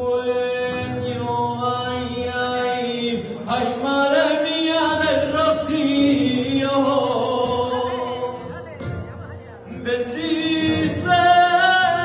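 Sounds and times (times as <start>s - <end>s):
man singing unaccompanied: 0.0s - 8.6s, 9.6s - 12.0s.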